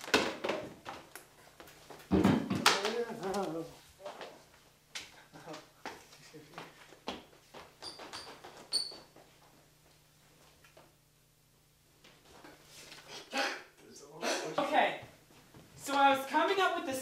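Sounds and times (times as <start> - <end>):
short high squeaks: 7.8 - 9.1.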